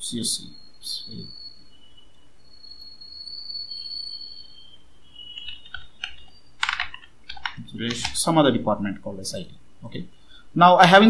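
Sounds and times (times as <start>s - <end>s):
faint high thin tone: 0.0s - 2.2s
computer keyboard typing: 5.4s - 8.3s.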